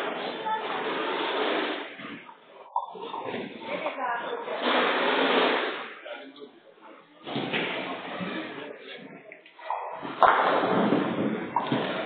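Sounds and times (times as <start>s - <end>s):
people talking: 0.0s - 5.0s, 5.9s - 10.4s
bowling balls rolling: 7.3s - 12.0s.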